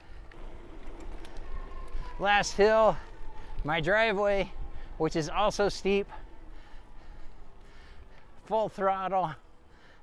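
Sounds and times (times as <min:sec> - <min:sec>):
wind rumbling on microphone: 0:00.0 - 0:08.2
bike tyres ticking on trail: 0:00.0 - 0:10.0.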